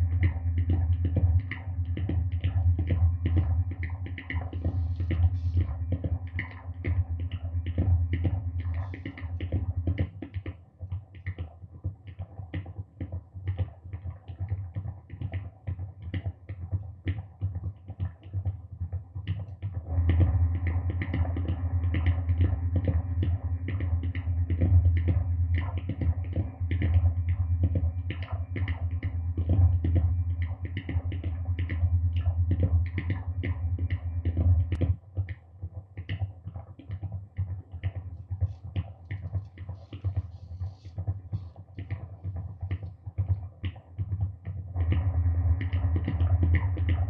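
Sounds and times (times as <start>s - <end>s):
low droning feedback hum: 0.0s - 9.9s, 19.8s - 34.9s, 44.8s - 47.0s.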